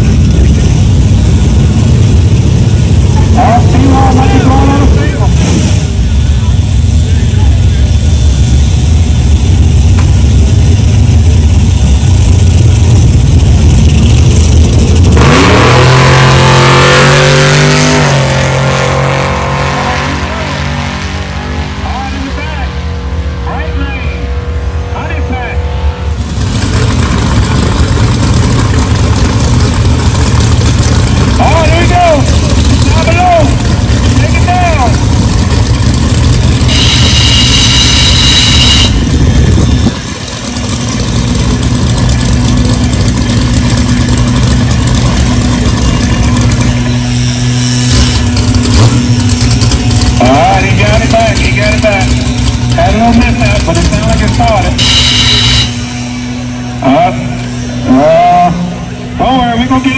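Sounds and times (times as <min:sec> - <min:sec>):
car engine running loudly: 0:00.0 - 0:59.9
drag car engine: 0:00.0 - 0:59.9
short high-pitched squeal: 0:36.6 - 0:39.1, 0:54.7 - 0:56.2.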